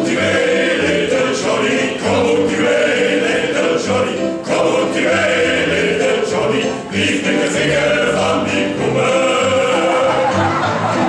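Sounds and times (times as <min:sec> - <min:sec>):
men singing in harmony: 0:00.0 - 0:11.0.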